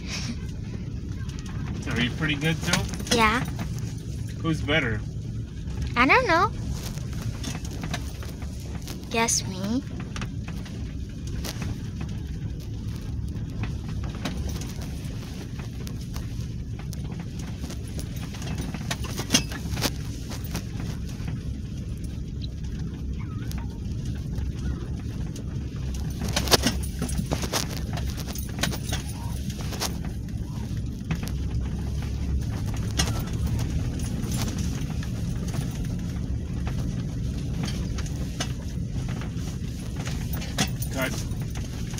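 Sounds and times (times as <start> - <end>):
engine and road rumble: 0.0 - 41.9
knocks and rattles: 1.1 - 41.9.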